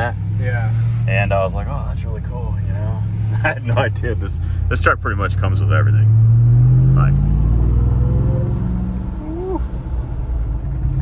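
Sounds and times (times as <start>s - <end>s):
truck engine deep drone: 0.0s - 11.0s.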